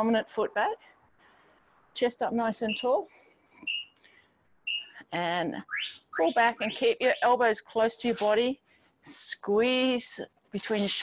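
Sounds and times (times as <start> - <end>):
bird whistling high notes: 3.6 - 4.0, 4.6 - 5.0, 5.7 - 7.3.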